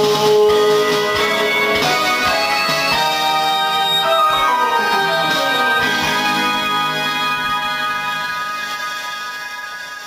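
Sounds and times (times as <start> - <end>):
instrumental pop backing track: 0.0 - 10.0.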